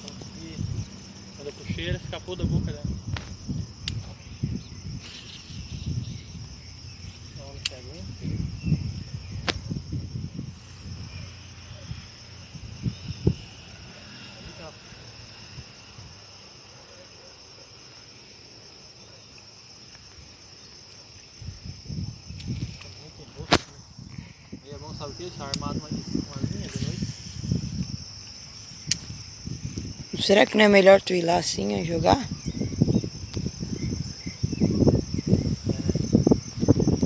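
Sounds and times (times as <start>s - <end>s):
insects trilling: 0.0s - 37.0s
sharp clicks: 3.1s - 4.1s, 7.6s - 7.8s, 28.8s - 29.9s
low rumbling on microphone: 8.0s - 13.6s.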